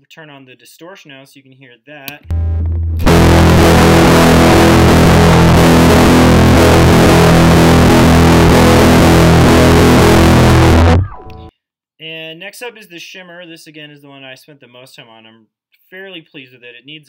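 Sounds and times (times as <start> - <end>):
distorted electric guitar chord: 2.2 - 11.5.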